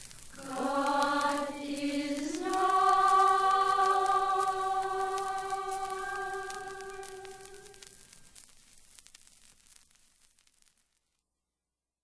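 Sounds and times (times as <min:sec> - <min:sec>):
choir-like singing: 0:00.4 - 0:07.8.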